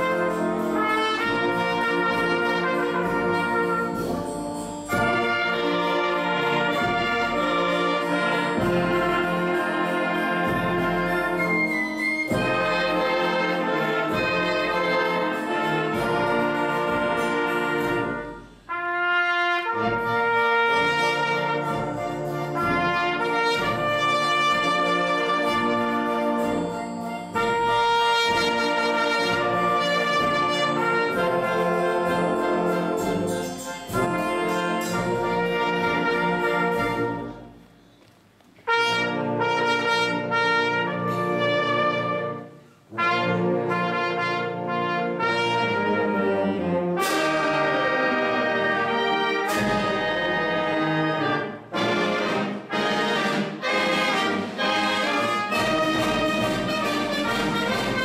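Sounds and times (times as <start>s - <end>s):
wind band playing chords: 0.0s - 58.0s.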